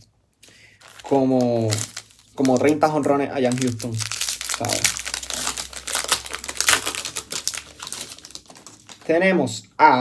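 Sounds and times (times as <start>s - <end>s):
plastic wrapper crinkling: 0.4s - 9.2s.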